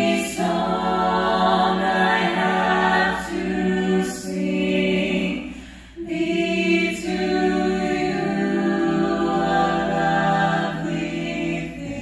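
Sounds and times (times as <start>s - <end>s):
a cappella group singing in harmony: 0.0s - 12.0s.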